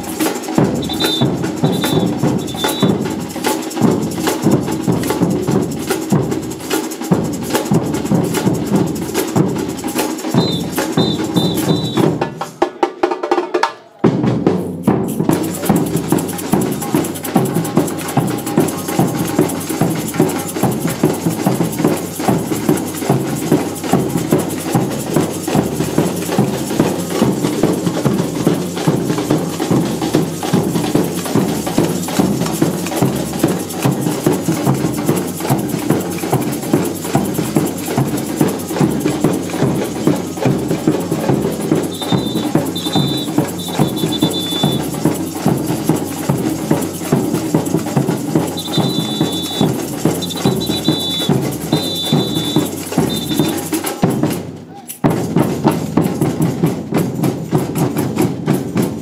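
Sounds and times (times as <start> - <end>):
jingle shakers: 0.0 - 12.1, 14.9 - 56.4
samba drumming: 0.0 - 59.0
whistle short blasts: 0.8 - 3.0, 10.4 - 12.2, 41.9 - 44.9, 48.6 - 53.6.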